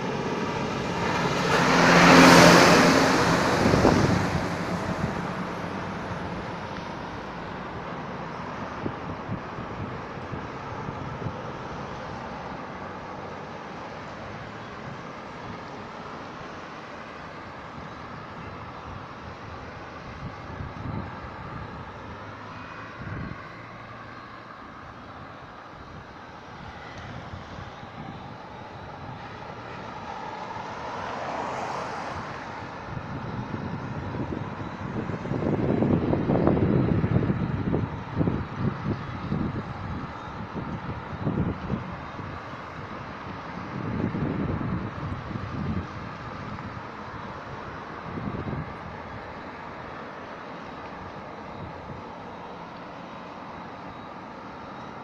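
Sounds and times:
cars passing: 0:00.0 - 0:55.0.

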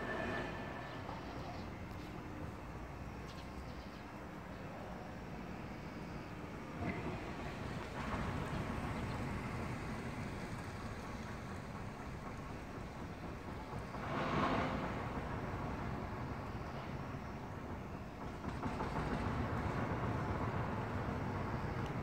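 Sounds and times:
outdoor background rumble: 0:00.0 - 0:22.0.

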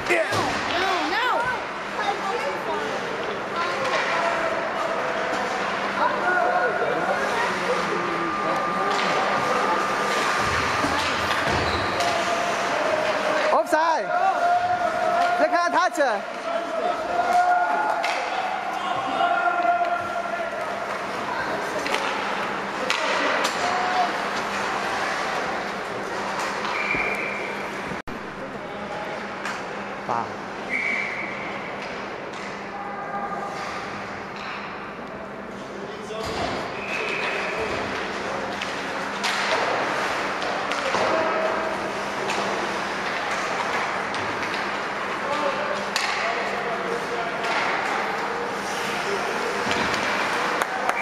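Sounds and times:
pucks striking boards: 0:03.7 - 0:04.5, 0:08.6 - 0:13.5, 0:16.3 - 0:18.6, 0:20.6 - 0:25.3, 0:36.2 - 0:51.0.

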